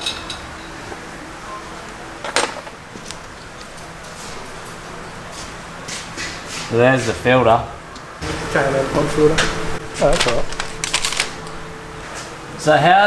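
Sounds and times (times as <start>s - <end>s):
workshop background noise: 0.0s - 13.0s.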